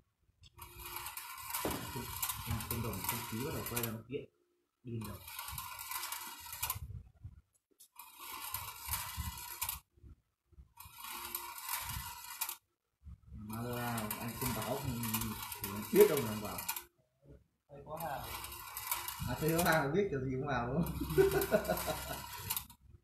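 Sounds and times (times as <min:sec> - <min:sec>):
steel balls rattling on wire track: 0:00.4 - 0:04.0, 0:05.0 - 0:06.8, 0:07.9 - 0:09.8, 0:10.8 - 0:12.6, 0:13.4 - 0:16.9, 0:17.9 - 0:20.0, 0:20.6 - 0:22.8.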